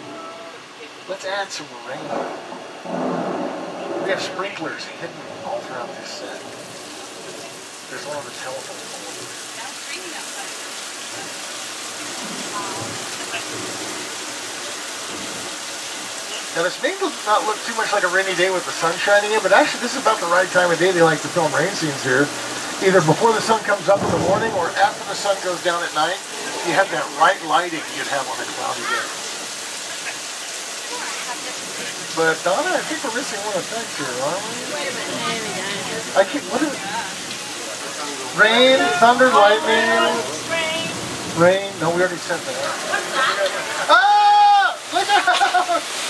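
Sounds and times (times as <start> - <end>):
sprinklers spraying water: 5.6 - 46.0.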